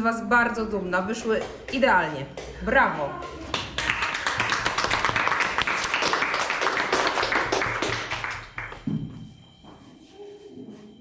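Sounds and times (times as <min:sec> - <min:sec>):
people clapping: 0:03.2 - 0:08.9.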